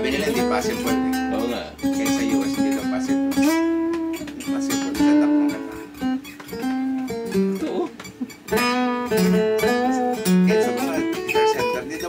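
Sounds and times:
acoustic guitar melody: 0.0s - 12.0s.

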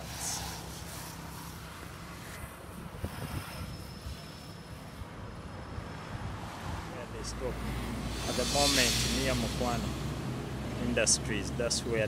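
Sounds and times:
outdoor noise haze: 0.0s - 12.0s
wind buffeting microphone: 2.7s - 4.1s.

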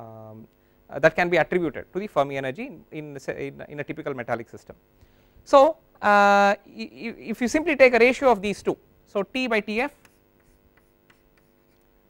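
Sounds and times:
faint steady hum: 0.0s - 12.0s
chalk tapping and scratching: 9.8s - 12.0s.

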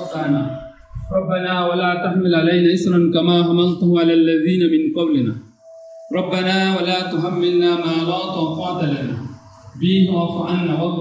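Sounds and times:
man chanting prayer over loudspeaker: 0.0s - 5.4s, 6.1s - 11.0s.

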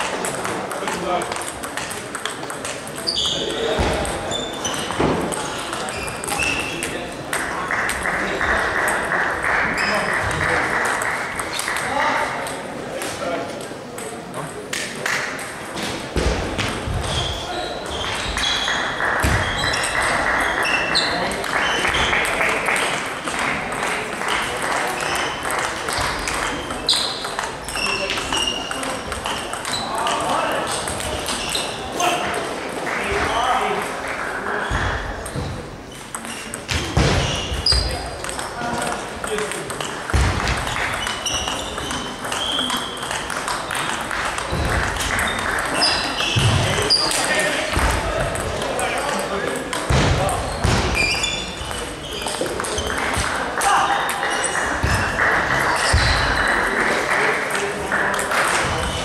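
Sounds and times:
table tennis ball clicking: 0.1s - 3.1s, 24.6s - 31.4s, 38.2s - 46.0s.

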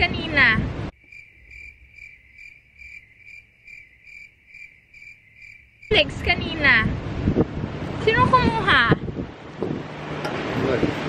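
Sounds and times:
crickets chirping: 0.9s - 6.8s.

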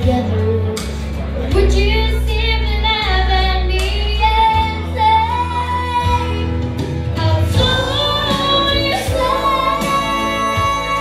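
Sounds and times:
girl singing karaoke: 0.0s - 11.0s.

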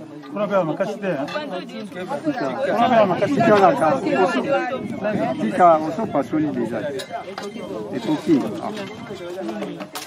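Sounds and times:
crowd chatting: 0.0s - 10.0s.

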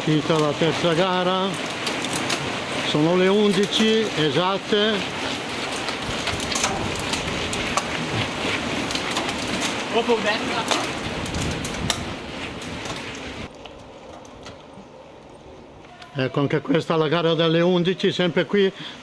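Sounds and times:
bike tyres rushing on stone: 0.0s - 16.0s
bikes clicking and rattling: 0.0s - 19.0s.

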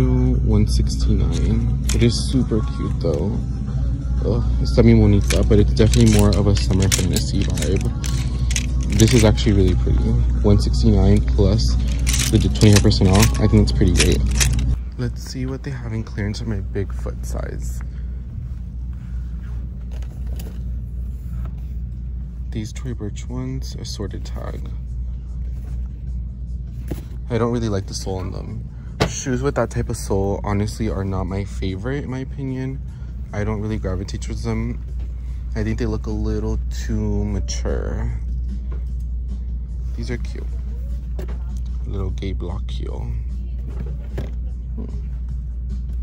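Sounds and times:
low rumble of store background: 0.0s - 46.0s.

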